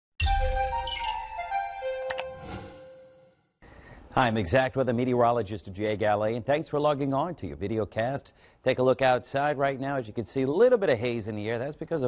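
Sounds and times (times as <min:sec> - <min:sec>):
bright chimes of a tv jingle: 0:00.2 - 0:03.5.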